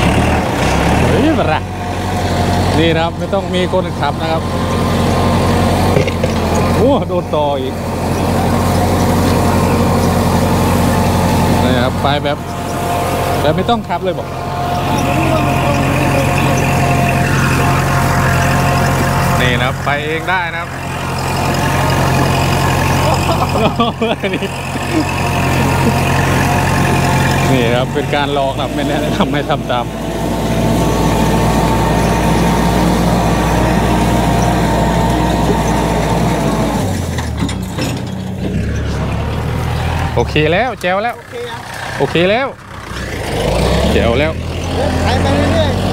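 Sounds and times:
plough mechanical clatter: 0.0s - 45.9s
tractor diesel engine under load: 0.0s - 45.9s.

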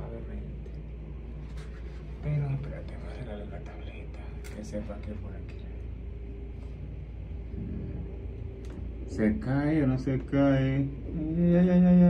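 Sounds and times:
faint steady hum: 0.0s - 12.0s
low steady rumble: 0.0s - 12.0s.

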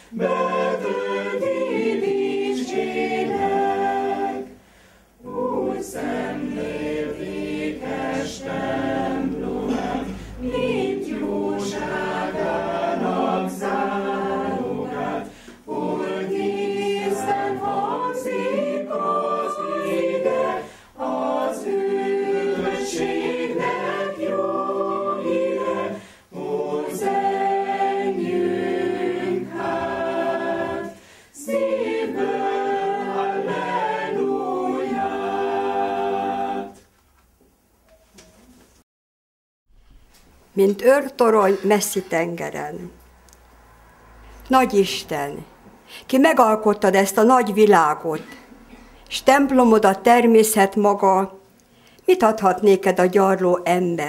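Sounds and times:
choir singing a hymn: 0.0s - 36.9s.

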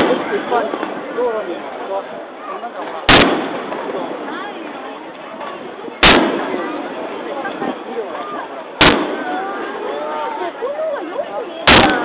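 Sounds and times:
firework bang: 0.0s - 1.5s, 2.8s - 4.8s, 6.0s - 7.9s, 8.8s - 9.8s, 11.6s - 12.0s
chatter of spectators: 0.0s - 12.0s.

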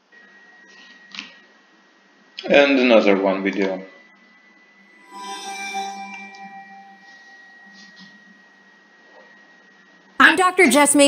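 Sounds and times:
faint steady high tone: 0.0s - 1.5s, 3.0s - 10.4s
bell-like chime: 5.0s - 9.6s.

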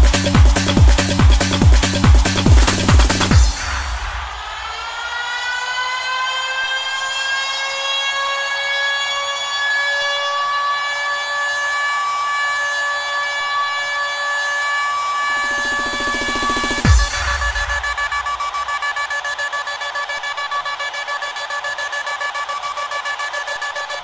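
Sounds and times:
siren-like synth note: 1.8s - 24.0s.

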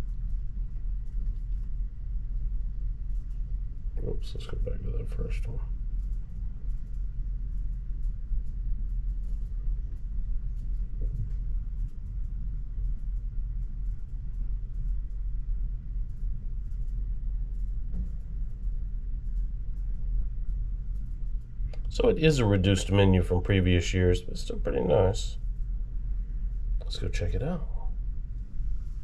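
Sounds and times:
steady low rumble: 0.0s - 29.0s.

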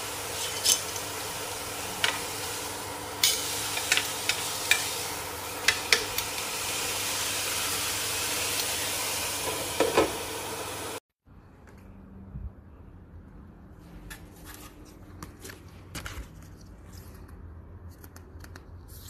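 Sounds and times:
food sizzling in a pot: 0.0s - 11.0s.

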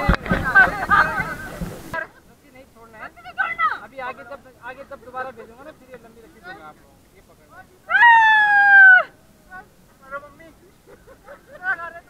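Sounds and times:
loud high-pitched shout: 7.9s - 9.2s.

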